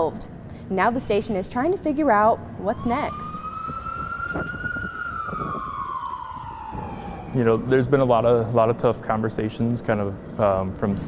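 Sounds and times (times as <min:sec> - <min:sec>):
emergency siren wailing: 0:02.6 - 0:08.6.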